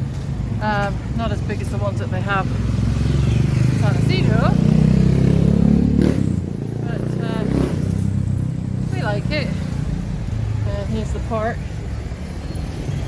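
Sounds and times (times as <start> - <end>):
town traffic hum: 0.0 - 13.0
motorcycle engine passing: 2.4 - 9.8.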